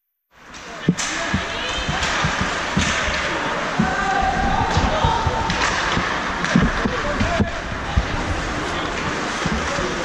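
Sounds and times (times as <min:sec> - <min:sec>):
hockey sticks and puck knocking: 0:00.5 - 0:04.0, 0:04.7 - 0:08.2
sharp crack: 0:00.6 - 0:03.9, 0:04.7 - 0:07.5.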